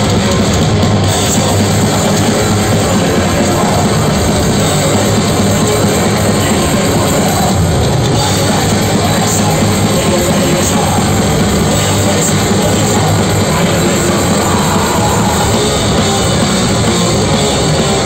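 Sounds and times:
distorted electric guitars: 0.0s - 18.0s
pounding drum kit: 0.0s - 18.0s.

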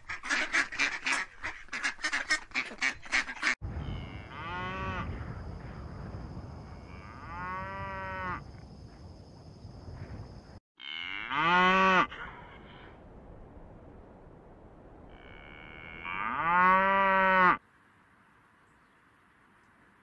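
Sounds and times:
cows mooing: 3.8s - 5.2s, 6.9s - 8.4s, 15.1s - 17.6s.

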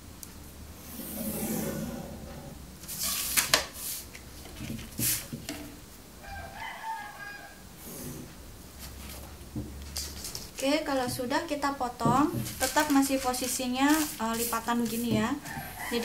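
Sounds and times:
plastic ruler sliding on paper: 0.9s - 2.4s
paper rustling: 8.8s - 10.8s, 12.2s - 16.0s.

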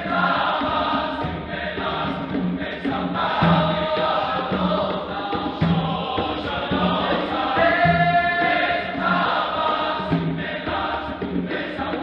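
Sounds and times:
men's choir singing: 0.0s - 12.0s.

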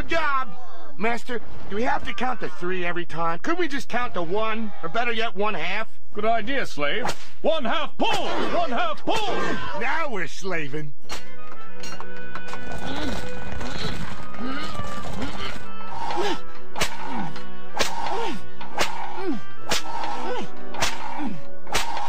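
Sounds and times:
cartoon whip cracks: 7.0s - 7.4s, 16.8s - 22.0s
musical score: 11.3s - 22.0s
grunts of effort: 12.7s - 22.0s.

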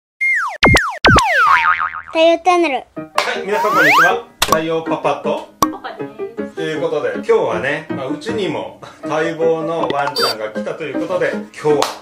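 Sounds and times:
cartoon boing sliding tones: 0.3s - 2.2s, 3.5s - 4.2s.

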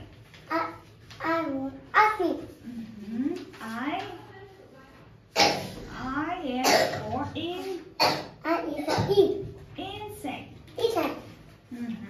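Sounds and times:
person coughing: 6.6s - 7.0s, 8.0s - 9.2s.

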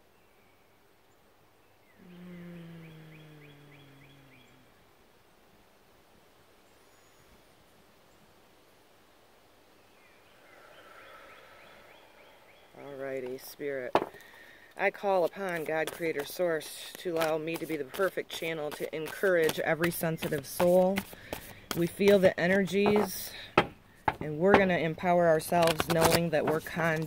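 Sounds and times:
woman breathing deeply: 2.0s - 4.7s, 10.5s - 12.6s, 14.1s - 14.8s
woman sighing: 2.0s - 4.7s
woman speaking: 21.8s - 23.3s.

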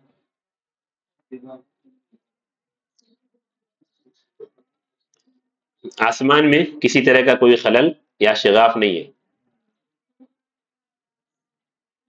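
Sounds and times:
man lecturing: 5.9s - 9.1s.

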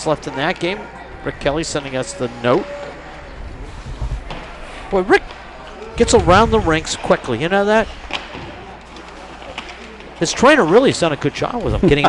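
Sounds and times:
low arena hum: 0.0s - 12.0s.

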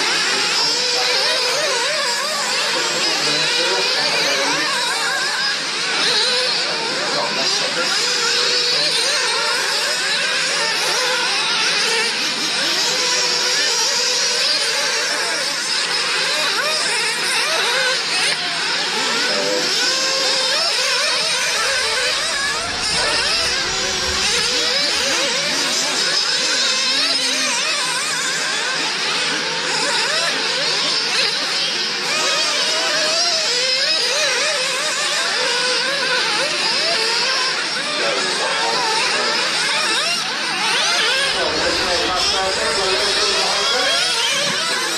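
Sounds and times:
radio-controlled car engines revving: 0.0s - 44.9s
low rumble: 21.1s - 26.1s, 41.3s - 44.5s.

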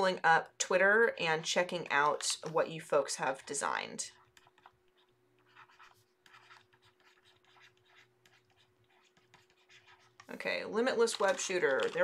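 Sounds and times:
faint steady hum: 0.0s - 12.0s
stylus scratching on tablet: 1.9s - 12.0s.

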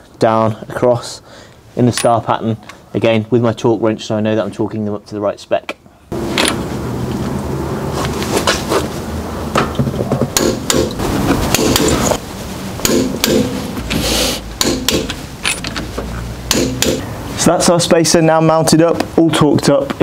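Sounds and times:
steady background noise: 0.0s - 20.0s
sharp metal clicks and knocks: 14.6s - 15.9s.

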